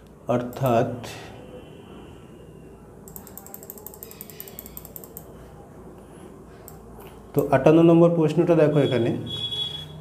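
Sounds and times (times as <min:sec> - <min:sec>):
rapid ratchet-like clicks: 0:03.1 - 0:05.3.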